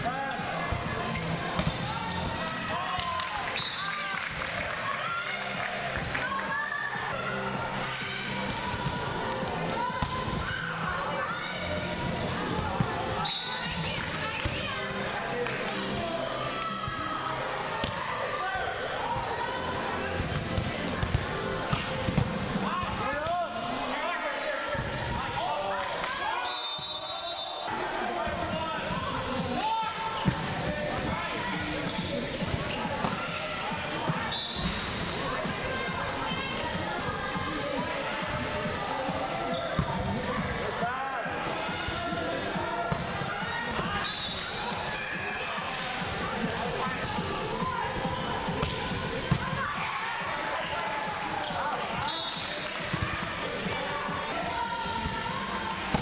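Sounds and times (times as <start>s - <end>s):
players' voices and calls: 0.0s - 56.0s.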